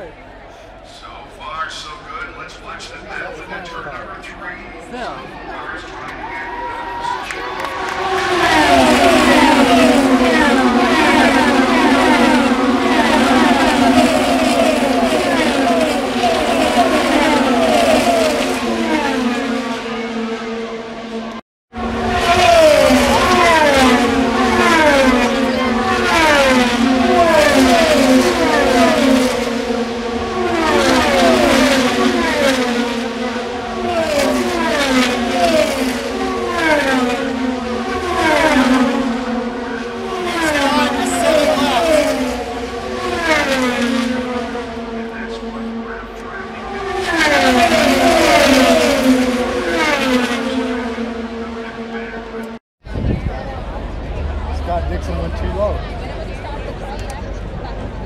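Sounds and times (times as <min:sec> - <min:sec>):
race cars passing by: 0:00.0 - 0:58.0.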